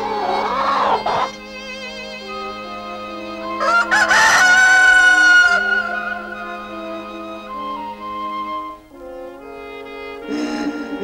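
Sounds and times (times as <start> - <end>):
soft background music: 0.0 - 11.0
rooster crowing: 3.6 - 6.7.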